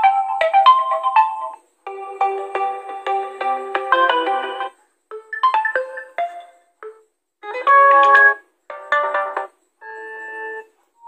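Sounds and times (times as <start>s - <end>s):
phone ringtone melodies: 0.0s - 10.7s.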